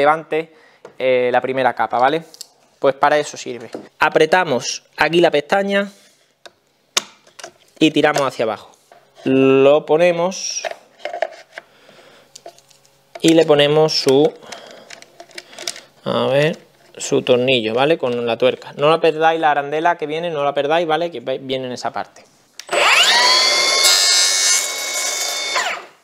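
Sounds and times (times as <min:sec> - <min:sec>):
plunge saw whining: 0:22.6 - 0:26.0.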